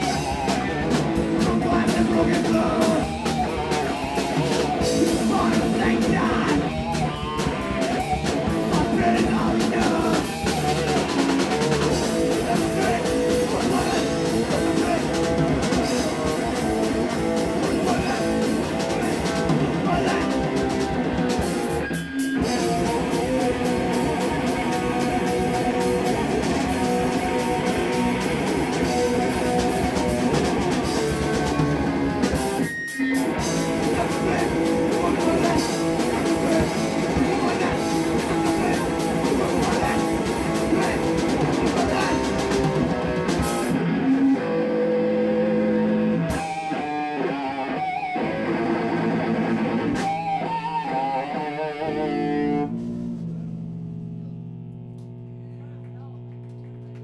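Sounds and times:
bass guitar: 0.0s - 57.0s
drum kit: 0.0s - 57.0s
electric guitars: 0.0s - 57.0s.

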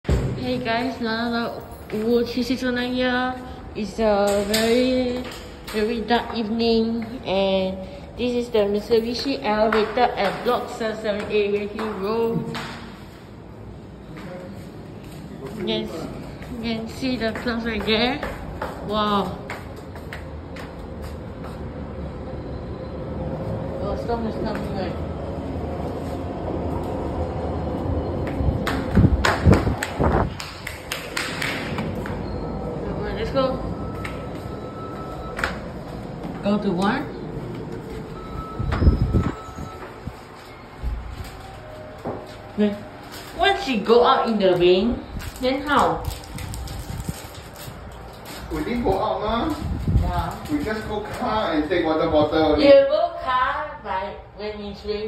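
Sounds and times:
lift car low rumble: 13.3s - 30.4s, 31.7s - 52.6s.

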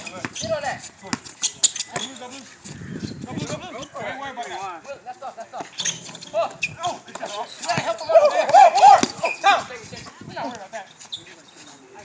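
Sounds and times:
players shouting: 7.2s - 9.7s
basketball bouncing on court: 7.8s - 9.2s.

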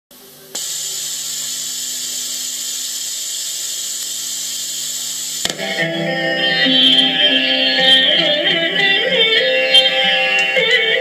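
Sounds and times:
sound system hiss and hum: 0.1s - 11.0s.

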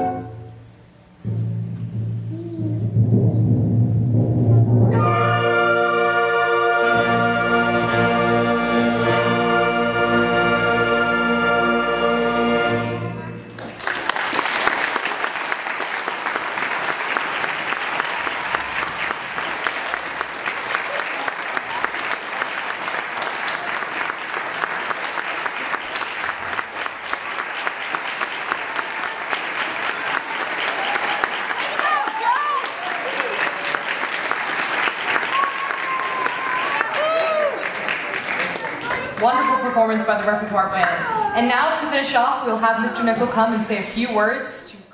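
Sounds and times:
wind band holding a chord: 0.0s - 3.6s, 4.5s - 13.4s
audience applauding: 13.5s - 39.8s.

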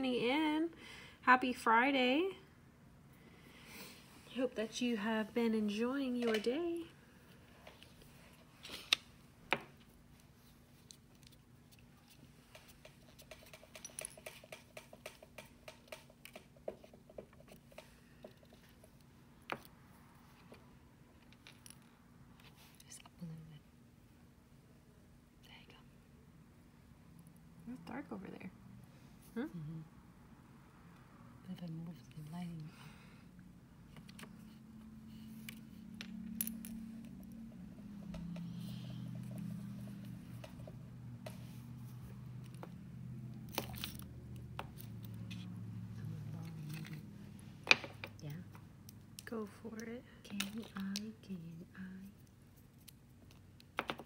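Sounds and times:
low steady hum: 0.0s - 54.0s
fingernails clicking and tapping: 12.5s - 18.4s.

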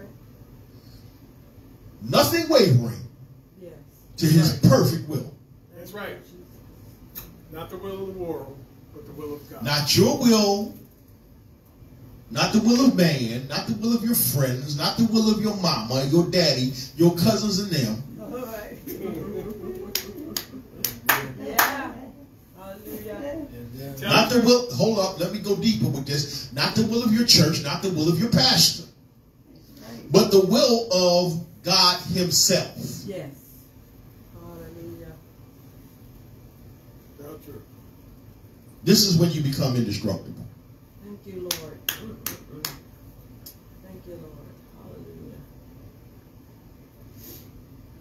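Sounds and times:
sharp hand claps: 19.9s - 21.8s, 41.5s - 42.9s.

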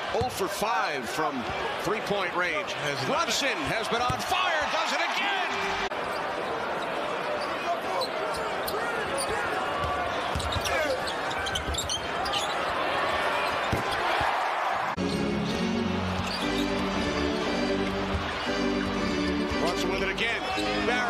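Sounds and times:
arena crowd noise: 0.0s - 21.0s
sneakers squeaking on hardwood: 9.2s - 12.7s
basketball bouncing: 9.8s - 10.9s, 13.6s - 14.3s
background music with held notes: 15.0s - 21.0s.

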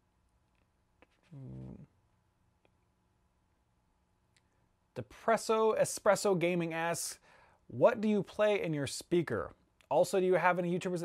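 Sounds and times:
man humming mm: 1.0s - 2.0s.

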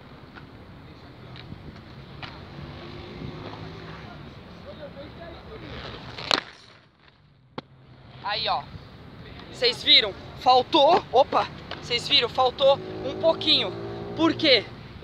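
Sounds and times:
skate wheels rolling on concrete: 0.0s - 15.0s
skates clacking on concrete ledge: 5.6s - 7.7s, 10.6s - 12.2s.

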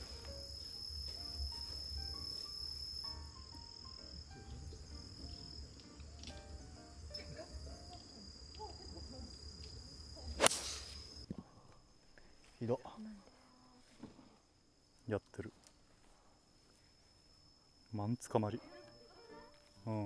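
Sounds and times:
insect trilling: 0.0s - 11.3s
golf club striking ball: 10.4s - 10.9s.

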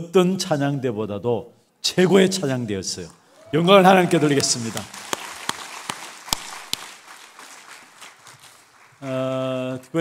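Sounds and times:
congregation applauding: 3.3s - 10.0s
sharp loud hand claps: 4.4s - 9.1s.

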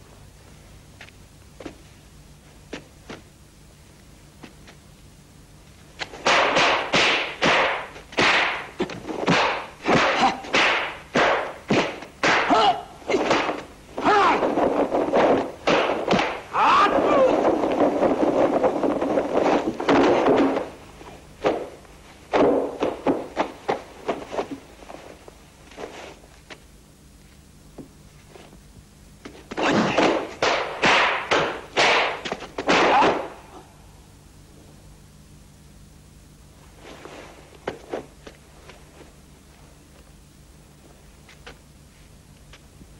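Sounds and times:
sharp punch hits: 6.2s - 13.6s, 29.6s - 33.4s.

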